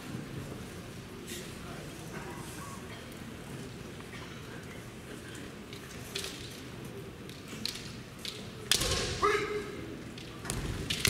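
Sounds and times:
person shouting: 0:09.2 - 0:09.8.

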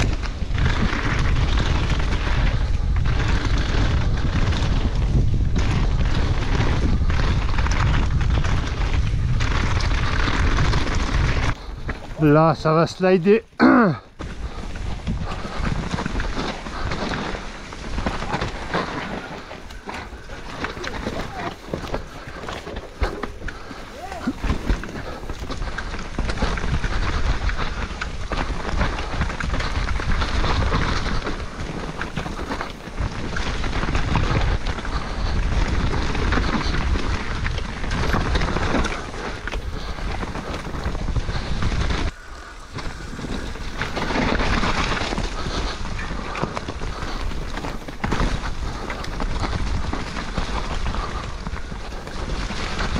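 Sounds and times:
wind on microphone: 0:00.0 - 0:12.8, 0:14.2 - 0:52.9
bike tyres rattling over rock: 0:00.0 - 0:52.9.

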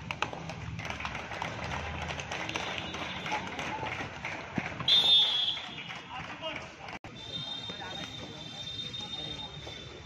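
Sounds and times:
crowd noise: 0:00.0 - 0:10.0
referee's whistle: 0:04.9 - 0:05.9, 0:07.1 - 0:09.9.

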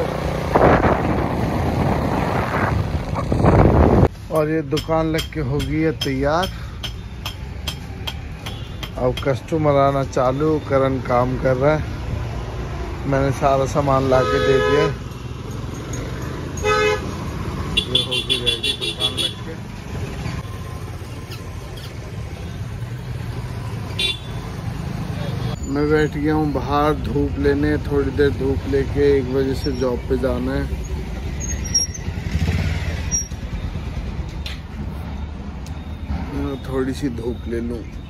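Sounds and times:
vehicle passing close: 0:00.0 - 0:04.1, 0:32.0 - 0:34.2
low traffic rumble: 0:00.0 - 0:38.0
vehicle horn toot: 0:14.1 - 0:15.0, 0:16.6 - 0:17.1, 0:24.0 - 0:24.4.

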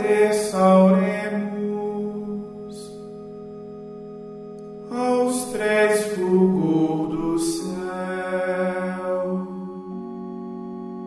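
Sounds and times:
person chanting a hymn: 0:00.0 - 0:03.5, 0:04.8 - 0:11.0
sustained keyboard chord: 0:00.0 - 0:11.0.

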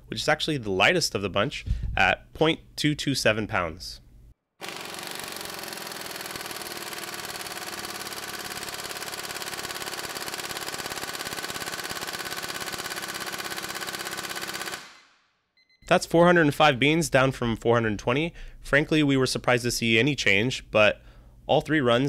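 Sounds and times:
air impact wrench hammering: 0:04.6 - 0:15.0.

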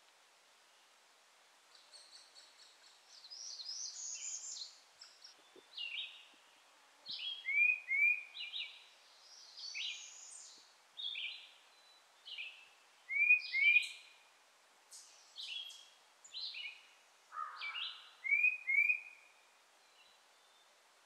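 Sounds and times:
songbirds singing: 0:01.6 - 0:21.0.

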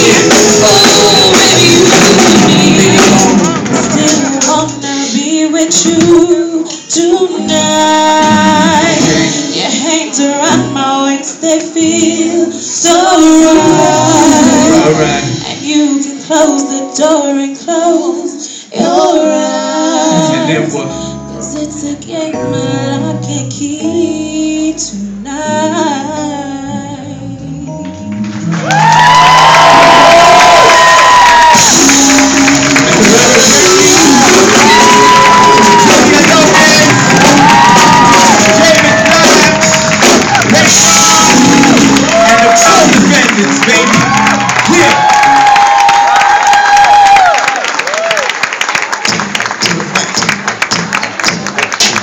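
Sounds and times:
audience applauding and cheering: 0:00.0 - 0:04.5, 0:28.1 - 0:52.0
live rock band playing: 0:00.0 - 0:12.2, 0:12.9 - 0:15.9, 0:27.2 - 0:45.6
person singing: 0:00.0 - 0:28.3, 0:30.6 - 0:45.6.

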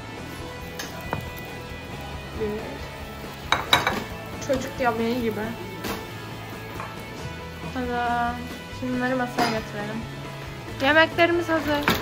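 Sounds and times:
background music: 0:00.0 - 0:12.0
cookware clinks: 0:03.5 - 0:04.1.

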